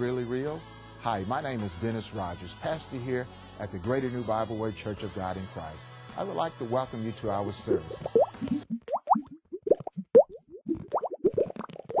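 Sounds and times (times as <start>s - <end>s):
bubbly plop blips: 8.0s - 12.0s.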